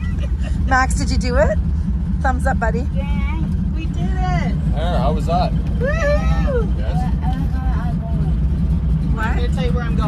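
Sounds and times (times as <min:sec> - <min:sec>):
plane engine and propeller drone: 0:00.0 - 0:10.0.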